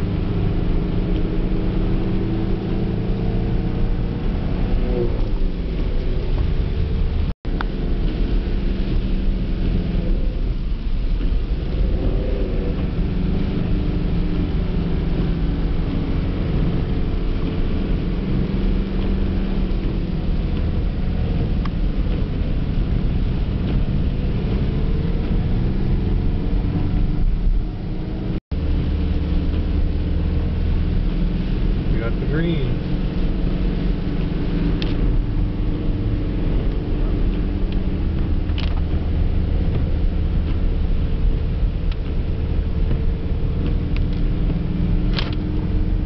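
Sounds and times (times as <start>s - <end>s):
car engine running: 0.0s - 46.0s
tyres hissing on wet road: 0.0s - 46.0s.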